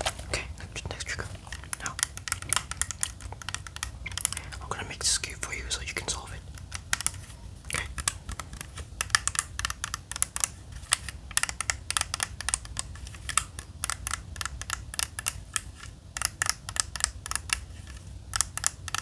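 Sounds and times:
puzzle cube plastic clicking: 0.0s - 19.0s.

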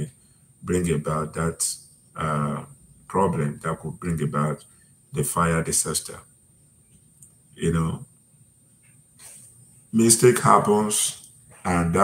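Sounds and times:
man talking: 0.0s - 6.2s, 7.6s - 8.1s, 9.9s - 12.0s.

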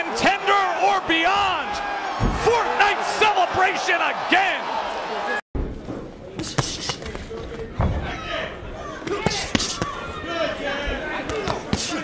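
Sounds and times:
murmur of voices in a hall: 5.9s - 12.0s.

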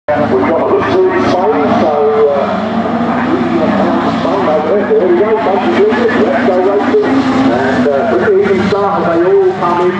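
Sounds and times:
racing car engines revving: 0.1s - 9.9s.

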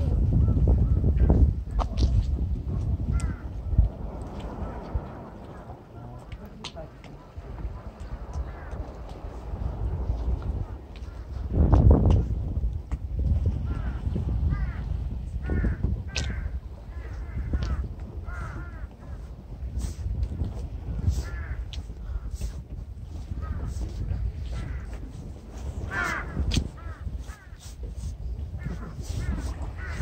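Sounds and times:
low rumble: 0.0s - 17.5s
crow cawing: 3.1s - 3.6s, 14.5s - 14.8s, 15.4s - 18.9s, 25.9s - 27.6s, 29.8s - 30.0s.

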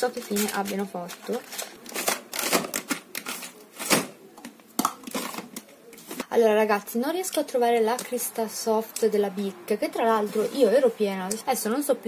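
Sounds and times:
rummaging through stationery: 0.0s - 4.1s.

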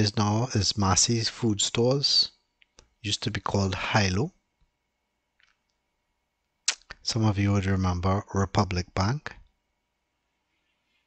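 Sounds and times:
person narrating: 0.0s - 2.3s, 3.0s - 4.3s
faint steady whine: 0.0s - 11.0s.

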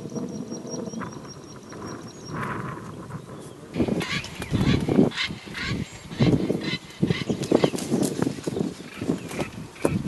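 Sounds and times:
vultures calling: 0.0s - 8.0s.

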